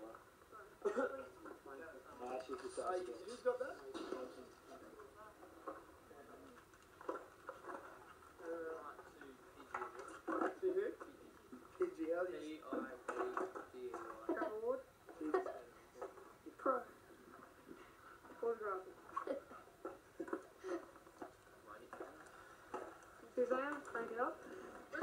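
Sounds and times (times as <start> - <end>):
muffled voices from tv speaker: 0.0 - 25.0.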